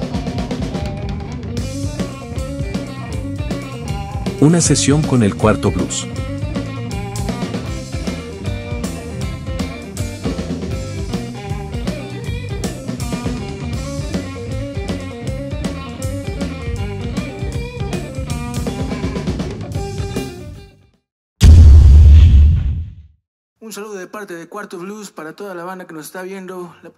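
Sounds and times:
blues-rock band playing: 0:00.0 - 0:20.6.

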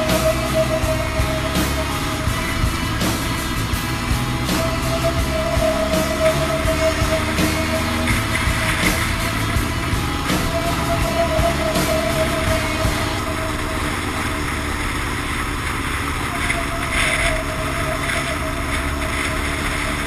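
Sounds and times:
high whine: 0:00.0 - 0:20.0
motorcycle engine rumble: 0:00.0 - 0:20.0.

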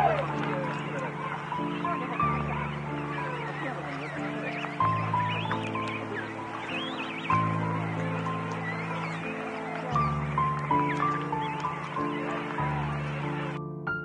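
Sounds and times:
penguin colony calling: 0:00.0 - 0:13.6
slow relaxing music: 0:00.0 - 0:14.0.

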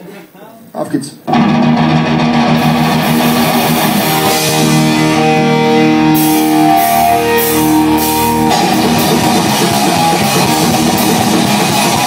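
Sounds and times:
distorted electric guitar chords: 0:01.3 - 0:12.0.

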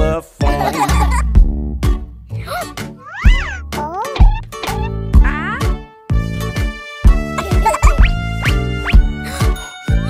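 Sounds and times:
children's song backing music: 0:00.0 - 0:01.2.

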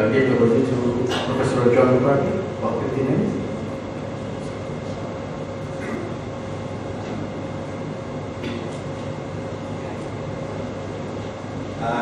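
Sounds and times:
faint steady hum: 0:00.0 - 0:12.0
low hall background rumble: 0:00.0 - 0:12.0.

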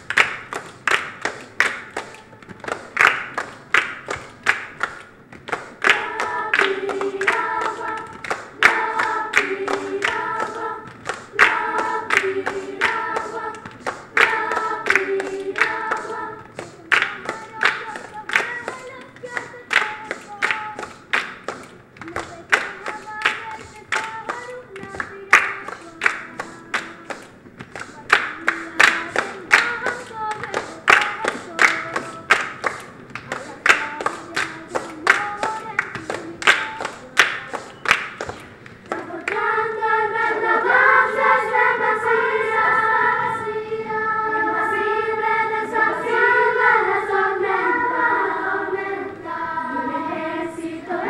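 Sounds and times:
children's choir singing: 0:00.0 - 0:51.0
rhythmic hand clapping: 0:00.0 - 0:51.0.

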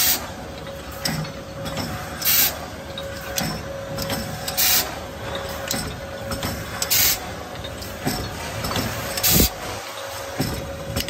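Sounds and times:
bottling machine running: 0:00.0 - 0:11.0
machine clicks: 0:00.0 - 0:11.0.

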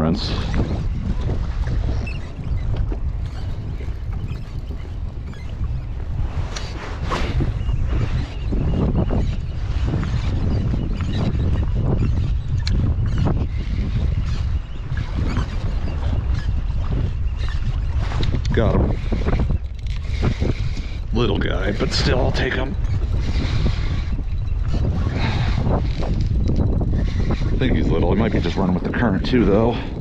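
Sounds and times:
waves slapping kayak hull: 0:00.0 - 0:30.0
wind buffeting microphone: 0:00.0 - 0:30.0.

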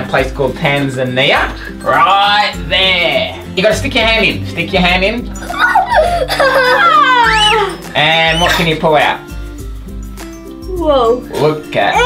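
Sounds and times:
background music: 0:00.0 - 0:12.0
child squealing: 0:05.4 - 0:08.8.

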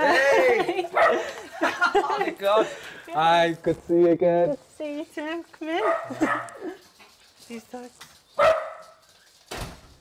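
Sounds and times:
dog barking: 0:01.0 - 0:01.2, 0:05.8 - 0:06.6, 0:08.4 - 0:09.0.

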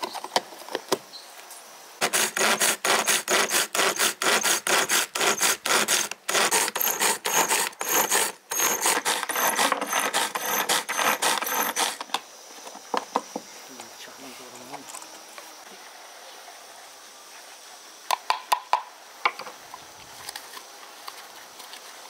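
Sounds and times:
pull-cord chopper whirring: 0:05.3 - 0:12.0.

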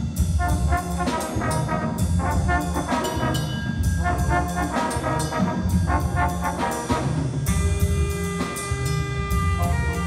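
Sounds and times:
drum kit cymbals: 0:00.0 - 0:10.0
trombones and trumpets chords: 0:00.0 - 0:10.0.

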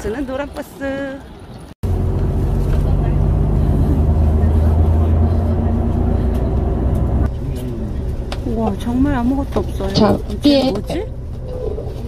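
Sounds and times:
bus engine drone and road noise: 0:00.0 - 0:12.0.

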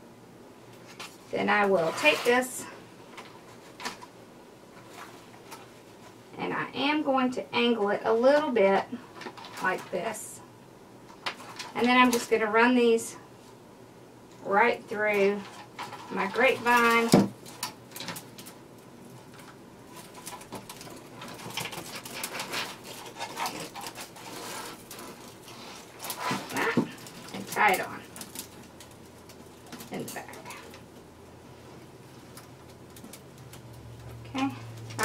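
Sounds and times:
dry twigs crackling and rustling: 0:15.0 - 0:35.0.

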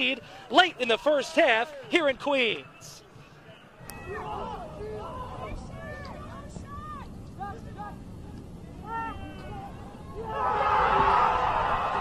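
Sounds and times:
players shouting: 0:00.0 - 0:08.0, 0:08.7 - 0:12.0
low stadium rumble: 0:00.0 - 0:12.0.

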